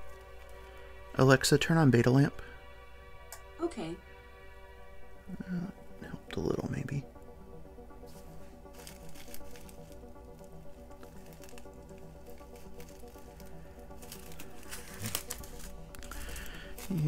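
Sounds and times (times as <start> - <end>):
soft background music: 0.0 - 17.0
plastic bags crinkling: 8.6 - 17.0.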